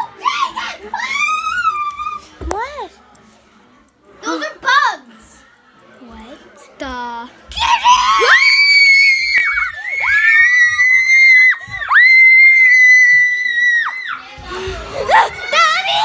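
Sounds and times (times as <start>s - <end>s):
girls screaming: 0.0s - 2.2s, 7.6s - 14.2s.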